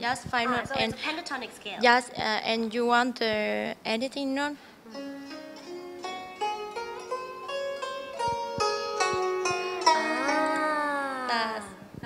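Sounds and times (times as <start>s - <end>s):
plucked zither melody: 4.9s - 11.8s.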